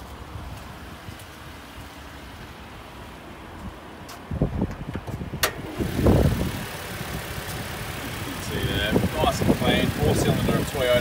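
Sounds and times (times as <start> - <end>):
low rumble of road traffic: 0.0 - 11.0
wind on microphone: 4.3 - 10.7.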